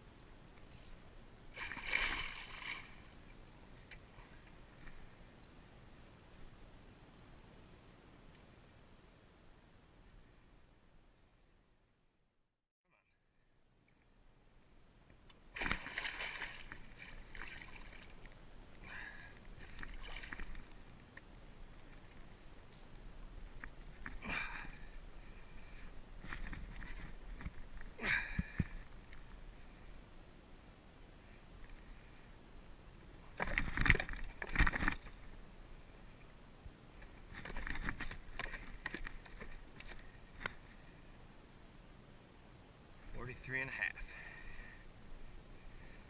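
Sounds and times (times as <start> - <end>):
water splashing and sloshing: 1.5 - 5.2, 15.5 - 22.7, 33.3 - 35.4, 37.1 - 40.8.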